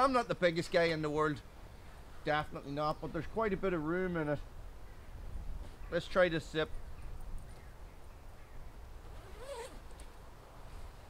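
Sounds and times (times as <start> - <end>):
zipper being pulled open: 9.0 - 10.2.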